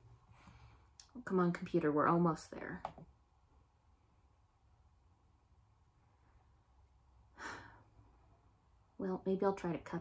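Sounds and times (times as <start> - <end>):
quiet room hum: 0.0 - 10.0
woman sighing: 7.4 - 7.9.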